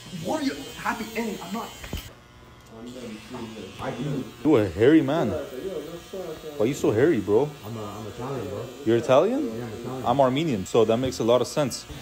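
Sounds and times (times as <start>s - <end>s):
electric hair clippers buzzing: 0.0s - 12.0s.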